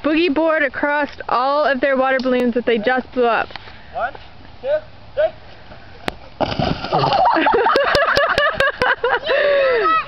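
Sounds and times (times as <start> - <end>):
water balloons bursting and splashing: 6.4 - 7.5.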